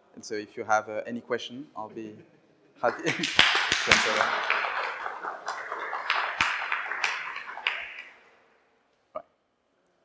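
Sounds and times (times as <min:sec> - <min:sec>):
small audience applauding: 0:02.9 - 0:08.3.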